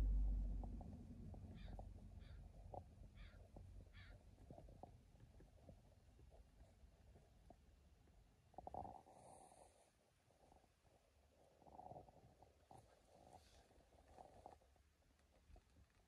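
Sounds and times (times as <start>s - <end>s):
faint low rumble: 0.0s - 16.0s.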